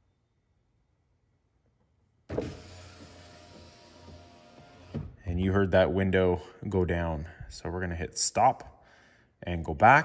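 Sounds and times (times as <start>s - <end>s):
power window motor humming: 2.3s - 5.1s
window motor jolt: 2.3s - 5.2s.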